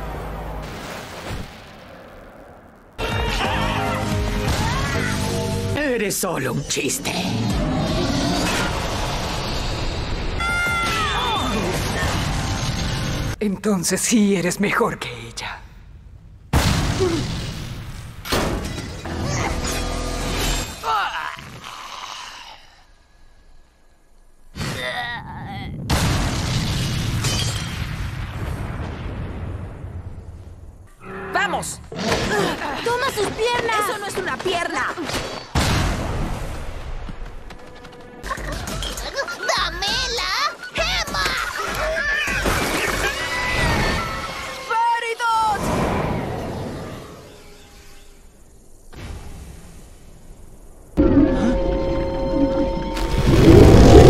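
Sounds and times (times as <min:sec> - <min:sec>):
music: 0:03.0 - 0:05.8
cartoon heavy crash: 0:51.0 - 0:54.0.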